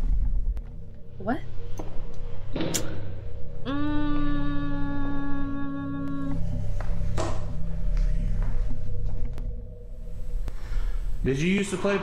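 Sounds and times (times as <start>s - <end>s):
faint sustained hum: 0.0s - 12.0s
low steady rumble: 0.0s - 12.0s.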